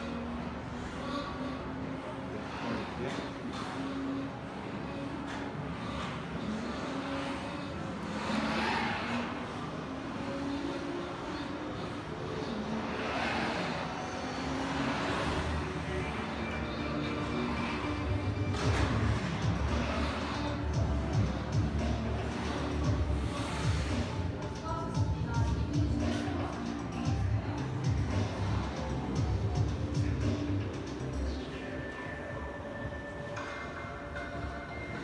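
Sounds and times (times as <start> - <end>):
background music: 0.0 - 35.0.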